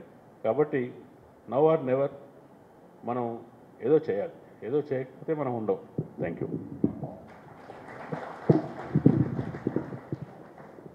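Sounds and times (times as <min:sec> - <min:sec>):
microphone handling knocks: 0:06.0 - 0:07.3, 0:08.5 - 0:10.3.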